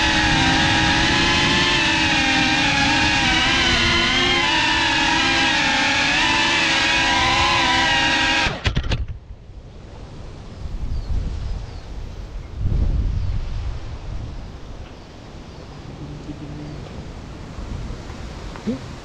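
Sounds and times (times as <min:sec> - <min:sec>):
drone motors whining: 0:00.0 - 0:09.1
faint wind noise: 0:00.0 - 0:19.0.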